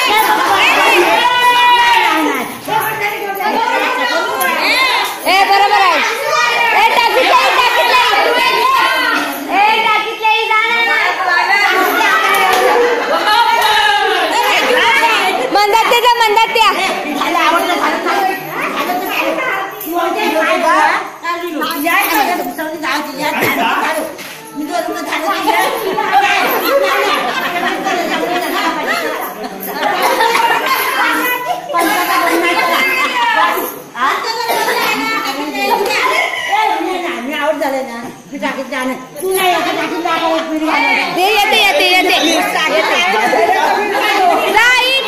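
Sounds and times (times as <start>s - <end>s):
women and children shouting: 0.0s - 45.0s
women talking and calling out: 0.0s - 45.0s.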